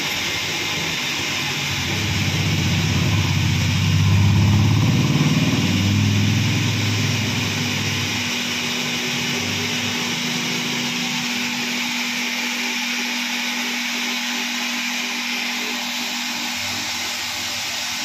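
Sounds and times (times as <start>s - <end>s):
electric pumps humming: 0.0s - 18.0s
deep rumble: 1.7s - 8.4s.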